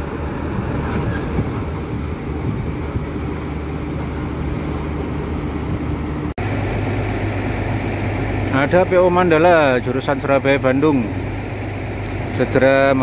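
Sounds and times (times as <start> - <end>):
bus diesel engine droning: 0.0 - 13.0
engine droning steadily: 0.0 - 13.0.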